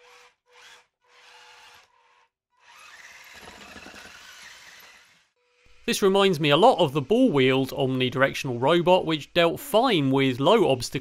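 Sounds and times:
small electric motors whining: 0.0 - 5.9.

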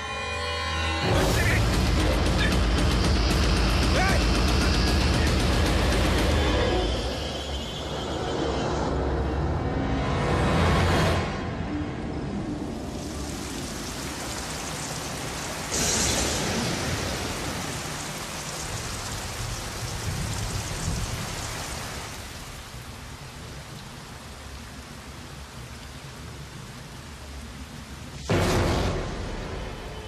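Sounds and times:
heavy rain pouring: 1.0 - 30.0.

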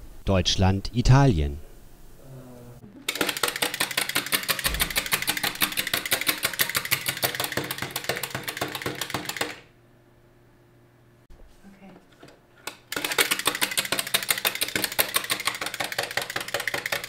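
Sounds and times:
clockwork toy clicking: 3.0 - 9.6, 12.7 - 17.0.

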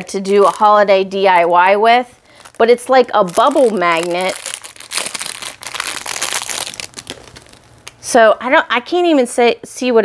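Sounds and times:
plastic packaging crinkling: 0.0 - 8.0.

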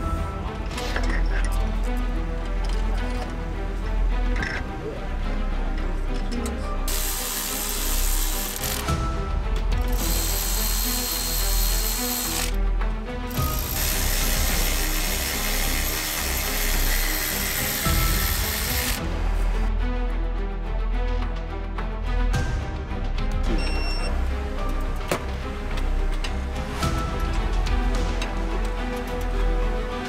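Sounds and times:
background music: 0.0 - 30.0
electric ratchet whirring: 6.9 - 8.9, 9.9 - 12.6, 13.3 - 19.0.

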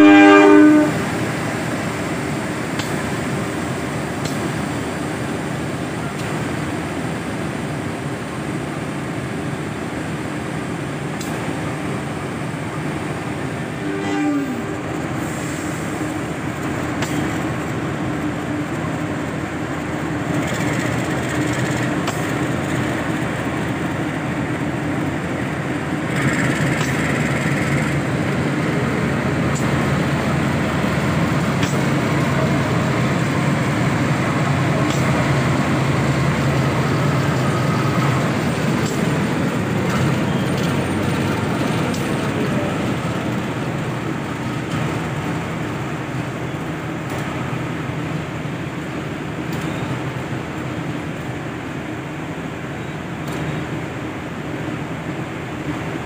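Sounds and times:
diesel locomotive drone: 0.0 - 56.0.

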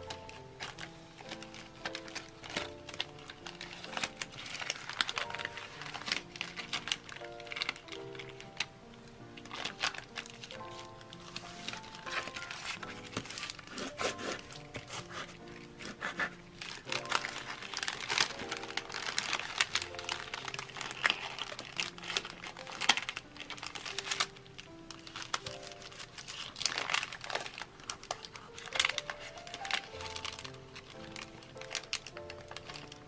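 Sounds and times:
background music with held notes: 0.0 - 33.0
paper bag and plastic film crinkling: 0.0 - 33.0.

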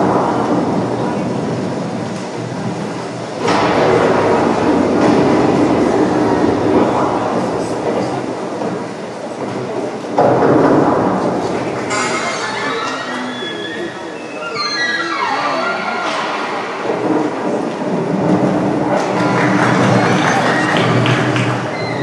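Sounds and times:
recorded soundtrack over speakers: 0.0 - 22.0.

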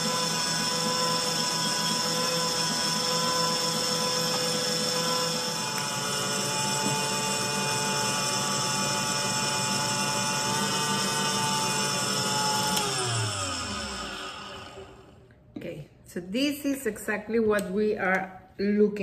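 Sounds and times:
stand mixer motor whine: 0.0 - 15.2.

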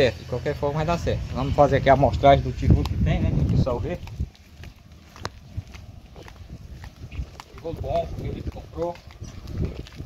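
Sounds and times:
footsteps on dirt and concrete: 0.3 - 10.0.

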